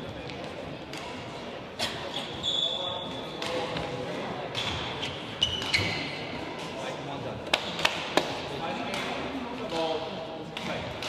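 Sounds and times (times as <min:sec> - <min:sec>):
shoe squeaks on court floor: 0:01.8 - 0:03.4, 0:04.7 - 0:06.4.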